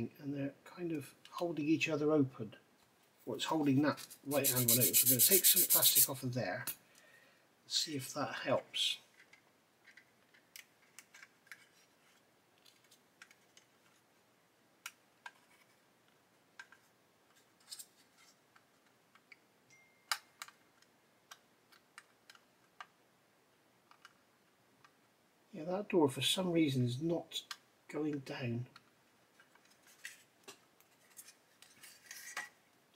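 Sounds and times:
plastic parts clicking together: 9.1s - 11.8s, 20.1s - 23.0s, 23.8s - 24.2s.

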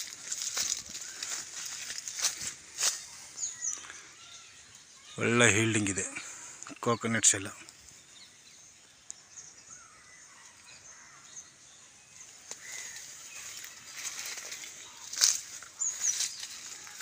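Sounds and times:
faint bird chirps: 0.0s - 17.0s.

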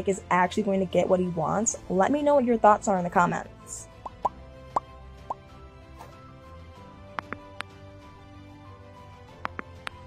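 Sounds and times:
soft background music: 0.0s - 10.0s
rising pop sound effects: 4.0s - 5.4s, 7.1s - 7.7s.

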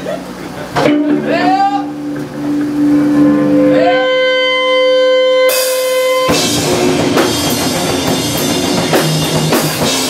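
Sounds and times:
full band with drums and cymbals: 0.0s - 10.0s
electric guitar feedback: 0.8s - 10.0s.

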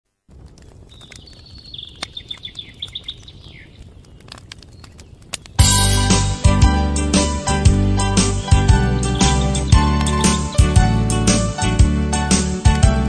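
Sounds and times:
outdoor background hiss: 0.1s - 12.8s
faint clicks: 0.3s - 5.6s
bird chirping: 0.5s - 11.5s
loud music: 5.6s - 13.0s.

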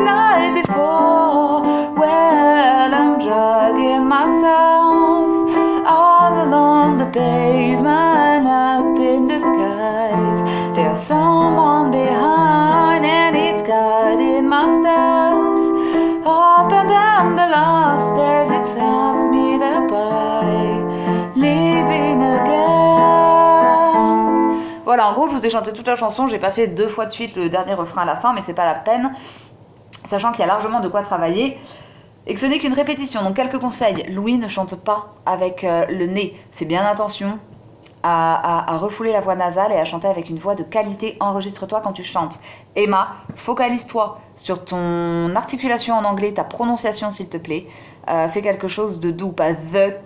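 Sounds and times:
person singing with vibrato: 0.0s - 24.9s
sustained keyboard chords: 0.0s - 25.4s.

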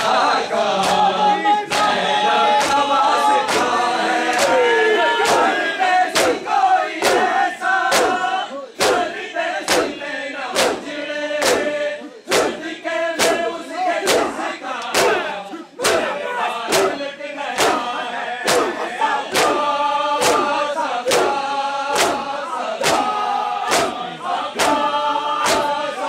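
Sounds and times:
men chanting in unison: 0.0s - 26.0s
hands slapping bare chests: 0.8s - 1.1s, 3.5s - 4.6s, 6.1s - 6.4s, 7.0s - 7.3s, 7.9s - 8.2s, 8.8s - 9.1s, 9.7s - 10.0s, 10.6s - 11.7s, 12.3s - 12.6s, 13.2s - 13.4s, 14.0s - 15.2s, 15.8s - 16.1s, 16.7s - 17.0s, 17.6s - 17.9s, 18.5s - 19.6s, 20.2s - 24.0s, 24.6s - 25.8s.

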